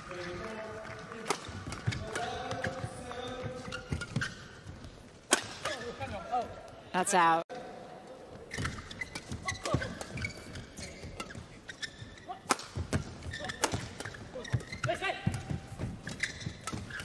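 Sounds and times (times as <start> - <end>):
shoes squeaking on court: 0.0 - 6.8, 8.2 - 17.0
rackets hitting shuttlecock: 0.1 - 4.5, 5.2 - 6.2, 8.5 - 17.0.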